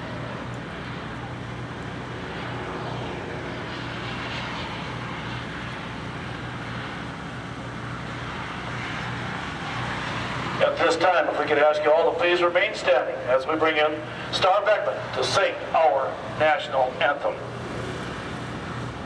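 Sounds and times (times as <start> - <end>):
steady low drone: 0.0 - 19.0.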